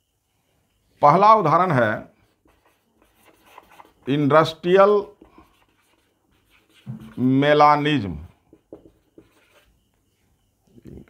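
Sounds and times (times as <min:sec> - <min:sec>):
marker pen on whiteboard: 0:01.4 - 0:10.2.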